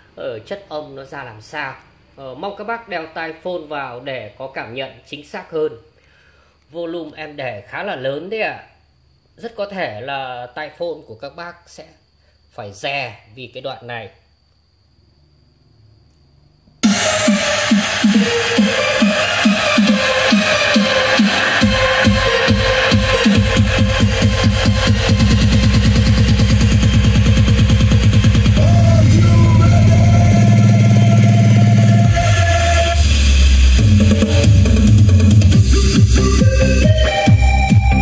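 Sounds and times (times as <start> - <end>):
electronic dance music: 16.8 - 38.0.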